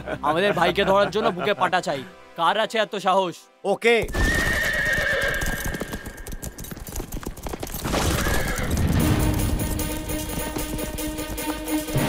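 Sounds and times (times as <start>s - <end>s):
horses galloping hoofbeats: 4.0s - 12.0s
horse neighing: 4.1s - 6.5s, 8.0s - 8.8s.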